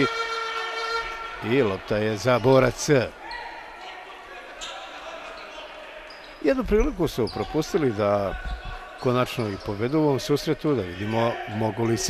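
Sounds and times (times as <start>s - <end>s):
faint echoing voices: 0.0s - 12.0s.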